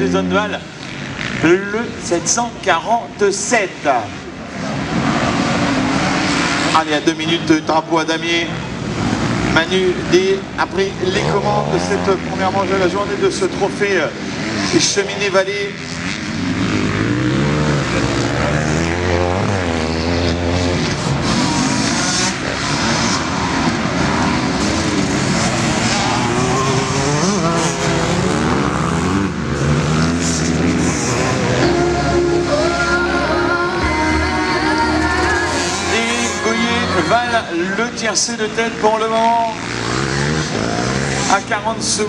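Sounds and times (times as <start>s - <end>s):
motocross bikes revving past: 0.0s - 42.0s.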